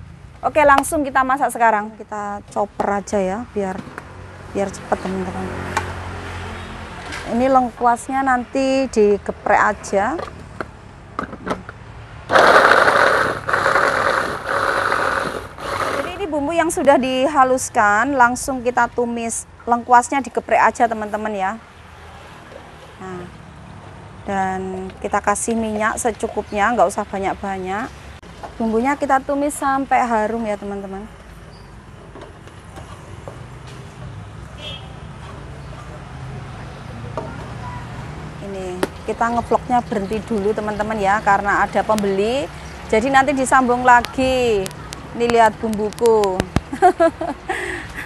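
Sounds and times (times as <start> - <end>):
electric food chopper whirring: 12.3 - 16.3.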